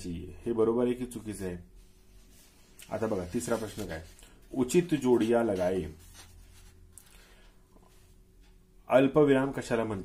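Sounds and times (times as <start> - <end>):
faint steady hum: 0.0 - 10.0
pen rustling on paper: 1.9 - 6.8.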